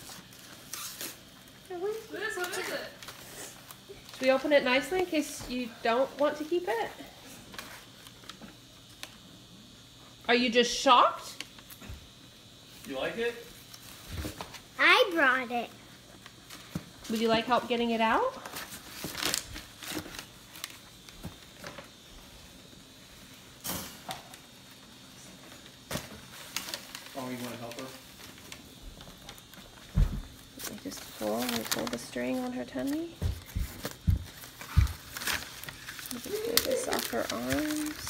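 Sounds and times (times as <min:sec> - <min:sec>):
tissue paper rustling: 0:18.3 - 0:20.8, 0:25.5 - 0:38.0.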